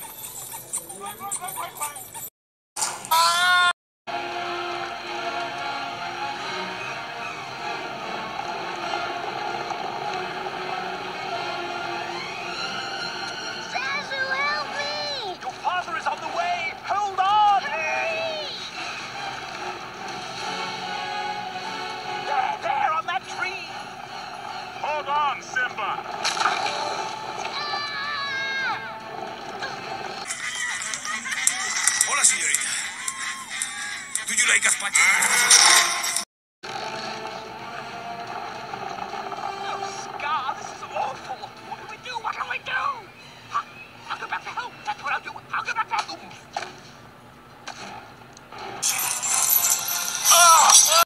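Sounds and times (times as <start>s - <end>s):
dramatic orchestral music: 4.1s - 14.8s, 18.7s - 24.8s.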